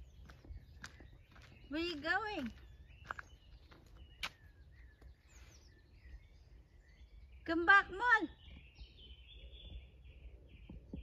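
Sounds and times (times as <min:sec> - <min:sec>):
faint birdsong: 0:00.0 - 0:11.0.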